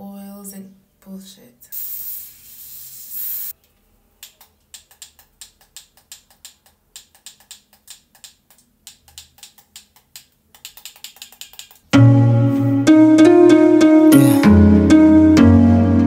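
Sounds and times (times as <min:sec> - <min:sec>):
aerosol spray hissing: 0:01.7 - 0:03.6.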